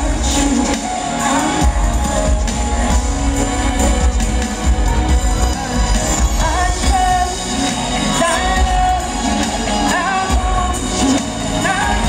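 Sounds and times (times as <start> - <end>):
woman singing: 0.0 - 3.8, 5.3 - 12.0
band with heavy bass: 0.0 - 12.0.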